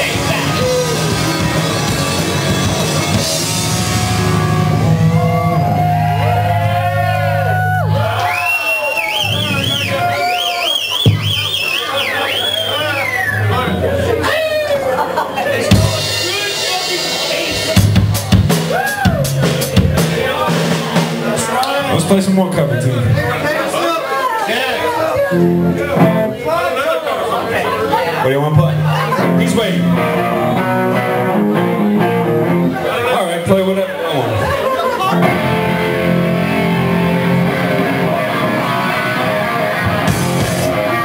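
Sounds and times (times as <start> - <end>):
live rock band playing: 0.0 - 8.3, 9.1 - 23.4, 24.8 - 26.7, 27.7 - 33.1, 34.1 - 41.0
drums: 0.0 - 23.4, 25.1 - 26.5, 27.9 - 33.0, 34.2 - 41.0
voices: 5.4 - 18.6
drum hits: 11.0 - 11.5, 15.7 - 21.5, 39.9 - 40.8.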